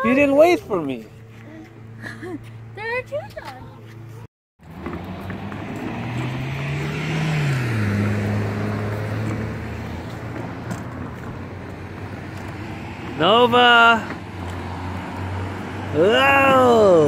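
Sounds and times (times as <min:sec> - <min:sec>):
car passing by: 0:04.6 - 0:17.0.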